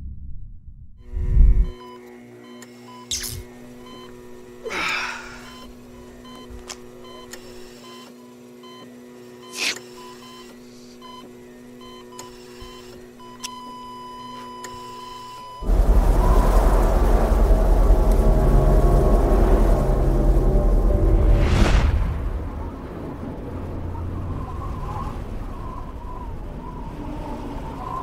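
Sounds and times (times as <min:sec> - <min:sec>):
electronic hum: 0:00.0 - 0:28.0
continuous beep: 0:01.0 - 0:04.1, 0:05.4 - 0:16.6
deep boom: 0:15.6 - 0:24.4
whooshing sweeps: 0:15.6 - 0:25.5.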